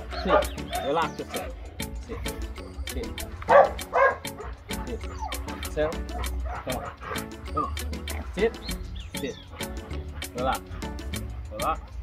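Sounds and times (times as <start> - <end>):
dog barking loudly: 0.0 - 1.6, 3.4 - 7.4
background music with beat: 0.0 - 12.0
dogs yipping and whimpering: 0.0 - 12.0.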